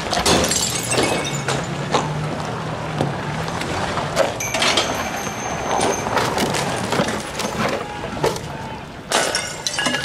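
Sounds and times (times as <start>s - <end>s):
glass bottle smashing: 0.2s - 1.7s, 9.1s - 10.0s
glass pieces clinking: 0.3s - 1.7s, 4.4s - 6.7s, 9.2s - 10.0s.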